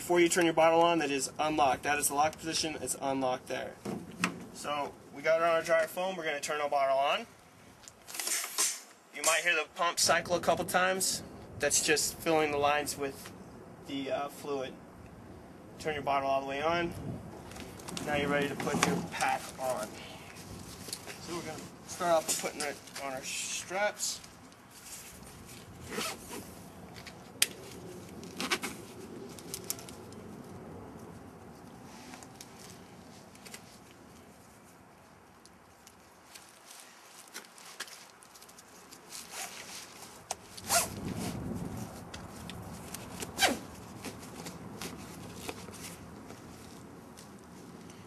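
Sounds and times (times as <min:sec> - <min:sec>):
nylon straps rasping through buckles: 0:07.8 - 0:09.5, 0:17.4 - 0:30.5, 0:31.5 - 0:48.0
rustling: 0:17.3 - 0:23.5, 0:24.1 - 0:48.0.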